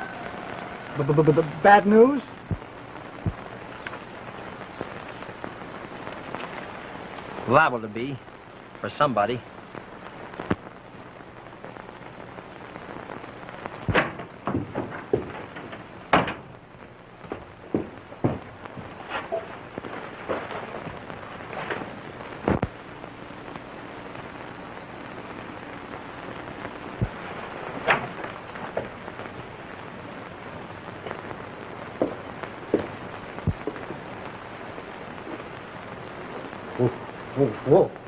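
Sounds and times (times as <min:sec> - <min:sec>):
crackling: 0:00.0 - 0:38.0
film soundtrack hiss: 0:00.0 - 0:38.0
clicks and pops: 0:02.4 - 0:05.4, 0:10.3 - 0:10.7, 0:13.5 - 0:16.6, 0:17.3 - 0:22.8, 0:27.0 - 0:27.2, 0:31.9 - 0:34.4.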